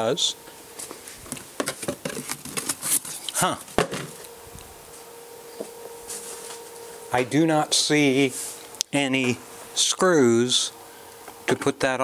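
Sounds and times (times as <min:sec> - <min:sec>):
packaging rustling and crinkling: 0:00.8 - 0:03.4.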